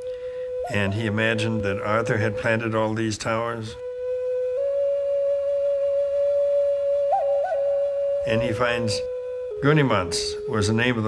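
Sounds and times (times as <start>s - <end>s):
long held flute-like note: 0.0s - 3.0s, 3.7s - 11.0s.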